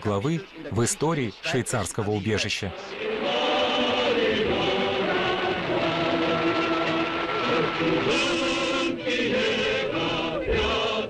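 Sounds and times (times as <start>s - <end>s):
choir singing long notes: 2.5s - 11.0s.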